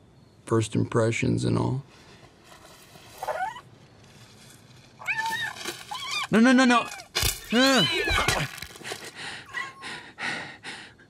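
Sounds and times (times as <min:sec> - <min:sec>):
cartoon cat mewing: 0:05.1 - 0:08.4.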